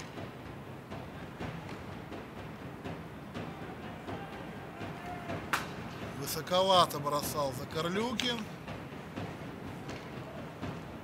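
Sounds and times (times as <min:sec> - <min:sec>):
crowd murmur in arena: 0:00.0 - 0:11.0
hockey sticks and puck knocking: 0:05.0 - 0:06.0, 0:07.9 - 0:08.6, 0:09.2 - 0:10.8
sharp crack: 0:05.5 - 0:05.8.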